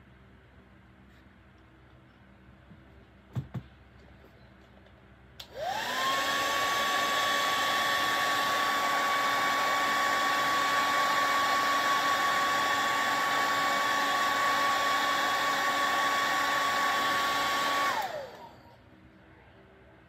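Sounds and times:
hair dryer motor blowing: 0:05.4 - 0:18.8.

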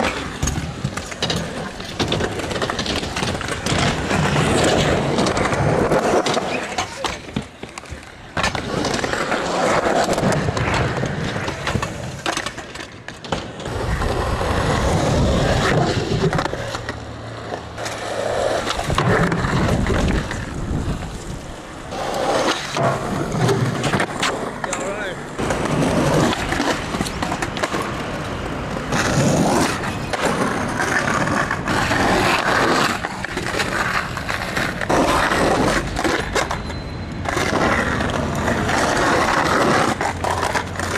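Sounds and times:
skateboard clacks: 0:00.0 - 0:40.9
skateboard wheels rolling: 0:00.0 - 0:40.9.

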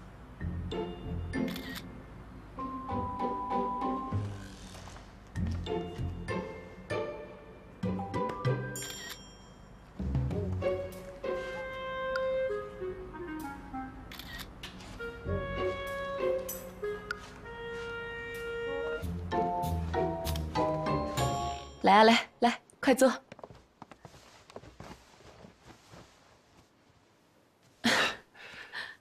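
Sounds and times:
soft background music: 0:00.1 - 0:22.0
camera shutter click: 0:01.5 - 0:01.9, 0:14.1 - 0:14.5.

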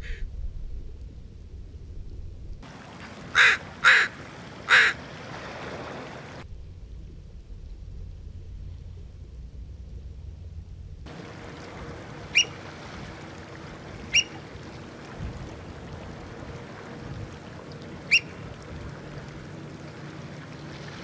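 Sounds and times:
low outdoor rumble: 0:00.0 - 0:21.0
shoreline hiss: 0:02.6 - 0:06.4, 0:11.0 - 0:21.0
crow cawing: 0:03.3 - 0:05.0.

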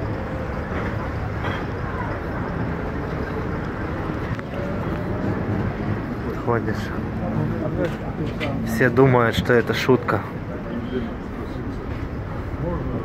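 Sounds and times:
faint voices: 0:00.0 - 0:13.0
outdoor street noise: 0:00.0 - 0:13.0.

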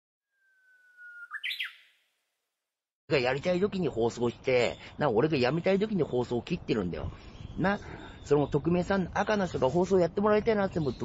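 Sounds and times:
bird singing: 0:00.3 - 0:02.0, 0:03.2 - 0:11.0.

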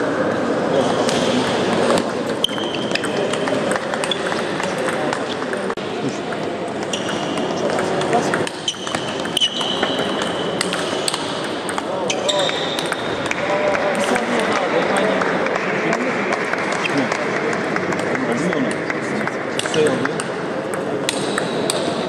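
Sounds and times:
background voice chatter: 0:00.0 - 0:08.5.

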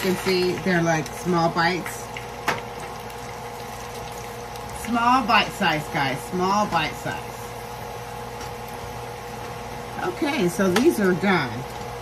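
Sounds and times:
potatoes sizzling in oil: 0:00.0 - 0:12.0.

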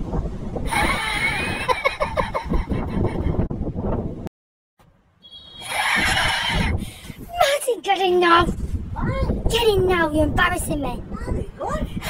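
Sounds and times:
wind rumbling on microphone: 0:00.0 - 0:04.3, 0:05.4 - 0:12.0
person laughing: 0:00.7 - 0:03.4.

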